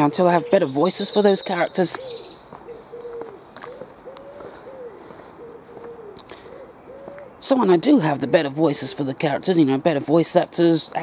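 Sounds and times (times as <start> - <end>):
pigeon cooing: 0.0 - 8.9
faint outdoor hiss: 0.0 - 11.0.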